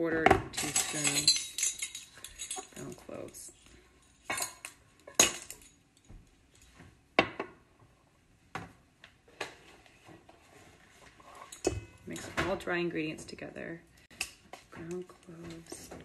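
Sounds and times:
metal spoons clinking on bowl: 0:00.5 - 0:03.4, 0:04.2 - 0:05.8.

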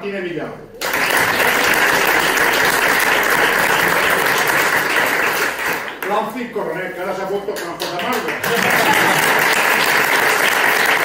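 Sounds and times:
people applauding: 0:00.8 - 0:06.3, 0:07.6 - 0:11.0.

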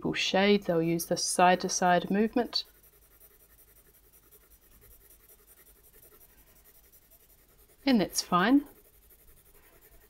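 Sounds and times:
pencil scratching on paper: 0:00.4 - 0:10.0.

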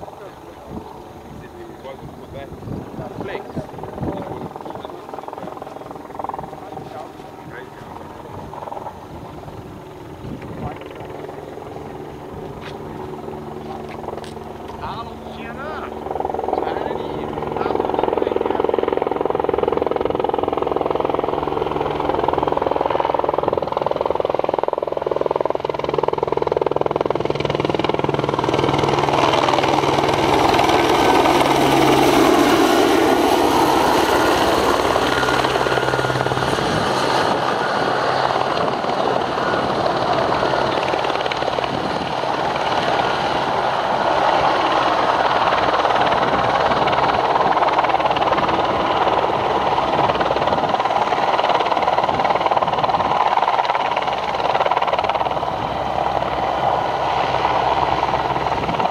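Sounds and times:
model helicopter engine and rotor: 0:00.0 - 0:58.9.

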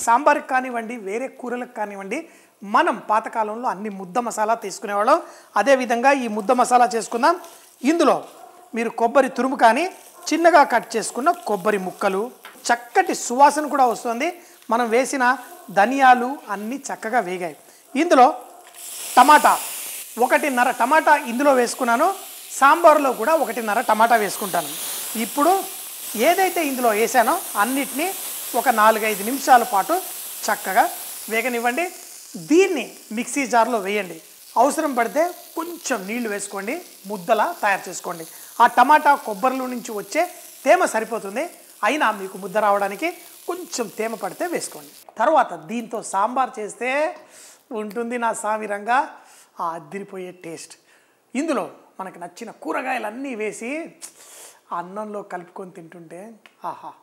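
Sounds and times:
person talking: 0:00.0 - 0:18.4, 0:19.2 - 0:19.6, 0:20.2 - 0:50.8
tomatoes sizzling in hot oil: 0:00.0 - 0:49.5
steady background hiss: 0:00.0 - 0:57.0.

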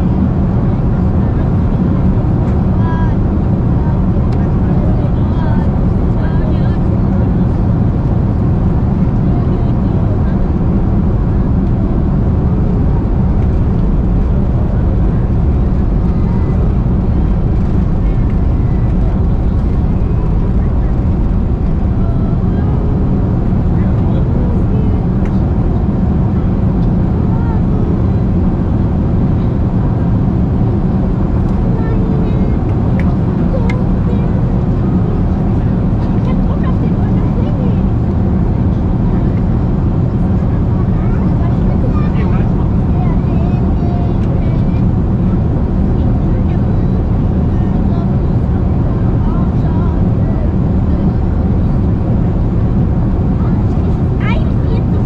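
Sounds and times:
aircraft cabin engine rumble: 0:00.0 - 0:55.0
faint passenger voices: 0:00.0 - 0:55.0.

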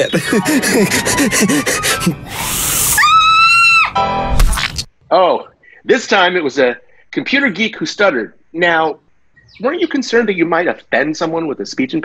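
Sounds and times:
man making wordless vocal sounds: 0:00.0 - 0:02.3
rising hiss: 0:00.6 - 0:03.6.

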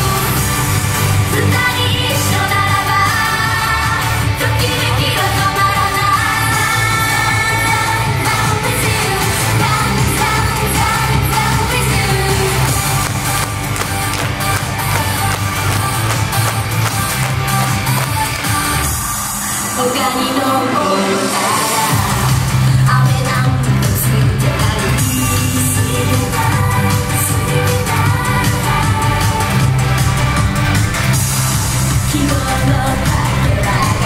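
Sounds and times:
girl group singing: 0:00.0 - 0:34.0
upbeat pop backing music: 0:00.0 - 0:34.0.

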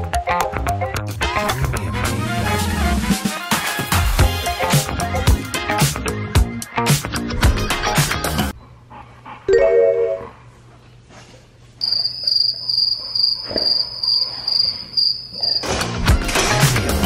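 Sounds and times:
cricket chirping: 0:11.8 - 0:15.7.

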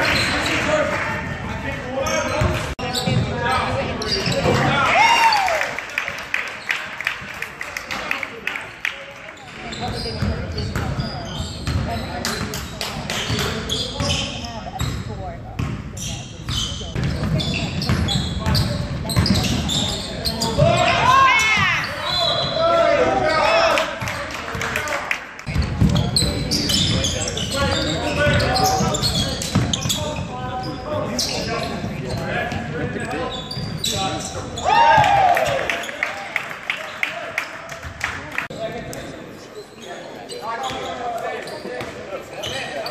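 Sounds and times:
sneakers squeaking: 0:00.0 - 0:05.5, 0:08.7 - 0:24.2, 0:25.4 - 0:36.2, 0:36.8 - 0:42.9
basketball bouncing on court: 0:09.8 - 0:19.8.

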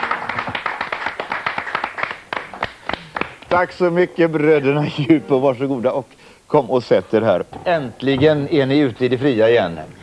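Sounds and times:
group of people clapping: 0:00.0 - 0:03.7.

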